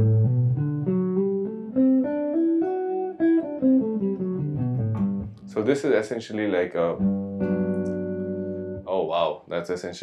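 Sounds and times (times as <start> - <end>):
electric guitar arpeggio: 0.0 - 5.8, 6.7 - 8.9.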